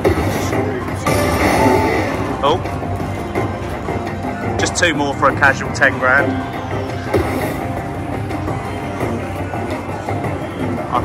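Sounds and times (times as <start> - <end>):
slot machine music and effects: 0.0 - 9.6.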